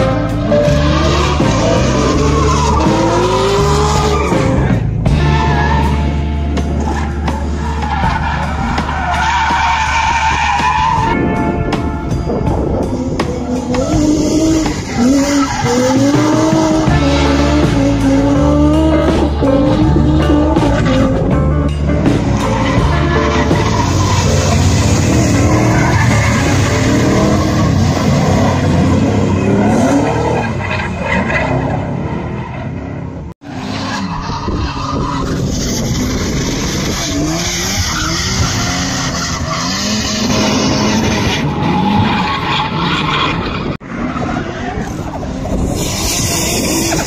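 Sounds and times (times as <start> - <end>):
tires squealing and skidding: 0.0 - 11.4, 12.5 - 47.0
car engines revving: 0.0 - 47.0.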